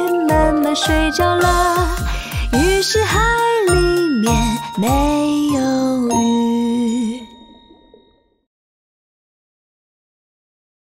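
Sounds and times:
children's song: 0:00.0 - 0:07.3
bell-like chime: 0:00.6 - 0:08.2.

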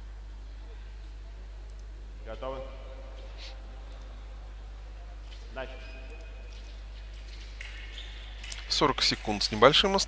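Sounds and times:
low hum of hall background: 0:00.0 - 0:10.0.

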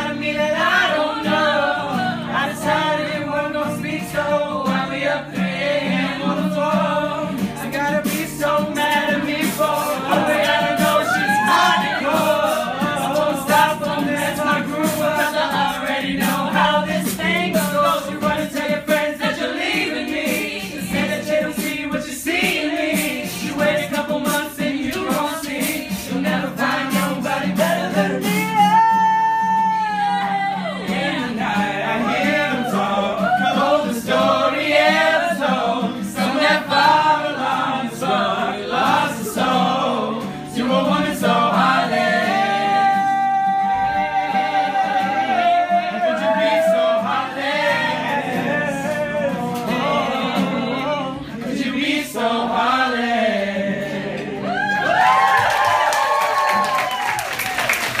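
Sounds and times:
group singing a cappella: 0:00.0 - 0:29.4, 0:30.0 - 0:55.1
voices cheering: 0:10.6 - 0:12.4, 0:28.2 - 0:31.3, 0:54.4 - 0:58.0
audience clapping: 0:54.8 - 0:58.0.

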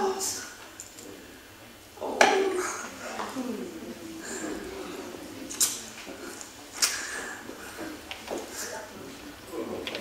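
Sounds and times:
low voices or laughter: 0:02.5 - 0:08.0.

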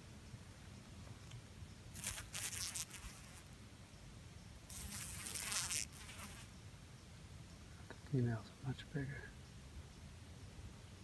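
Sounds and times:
wasps buzzing: 0:01.9 - 0:03.5, 0:04.7 - 0:06.5.

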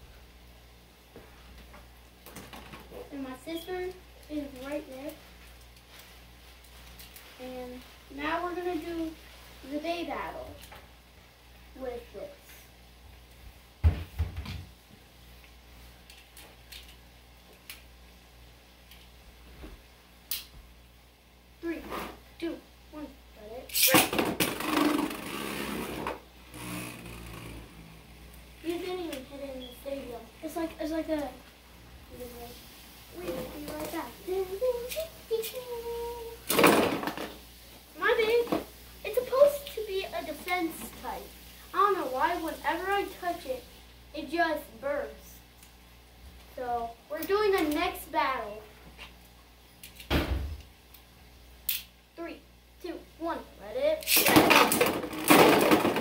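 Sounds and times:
spinning tops whirring and clattering: 0:23.7 - 0:30.1, 0:54.0 - 0:56.0
children's voices: 0:32.1 - 0:36.4.

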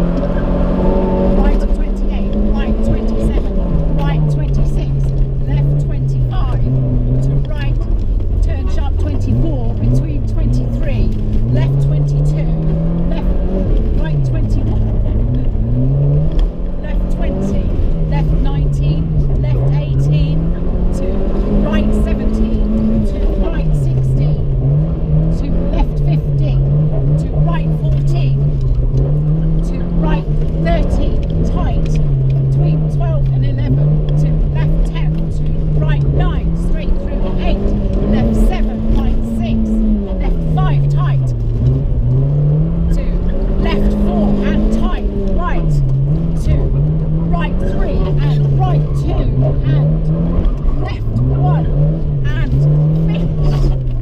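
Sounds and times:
car engine revving: 0:00.0 - 0:54.0.

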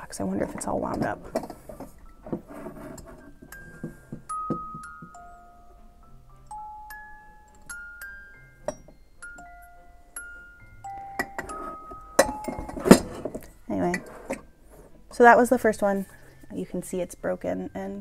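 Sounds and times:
music box playing slow tune: 0:01.5 - 0:14.9, 0:15.8 - 0:18.0.

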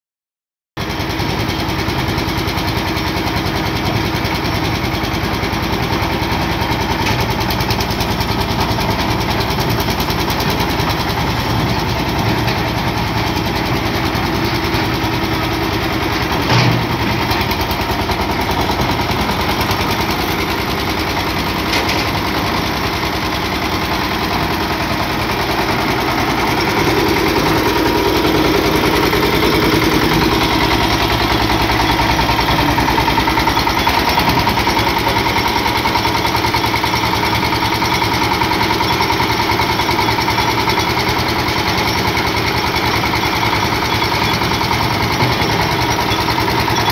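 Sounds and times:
concrete mixer engine running: 0:00.8 - 0:46.9.

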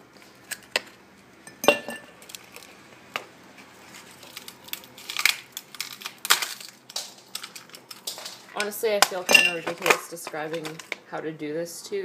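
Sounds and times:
ice cubes clinking in glass: 0:09.2 - 0:10.0.

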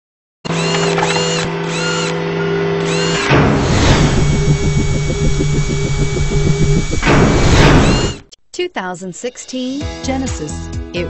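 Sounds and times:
mechanical whir: 0:00.5 - 0:08.3
rhythmic machine-like pulsing: 0:02.9 - 0:08.3
whoosh: 0:03.3 - 0:08.2
music: 0:09.0 - 0:11.0.

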